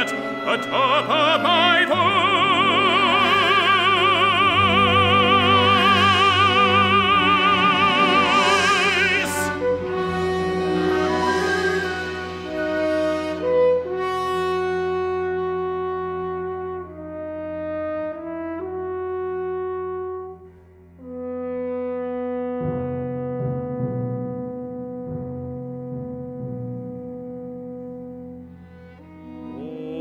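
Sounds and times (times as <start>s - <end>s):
deep orchestral instruments: 0.0s - 30.0s
sustained brass chords: 0.0s - 30.0s.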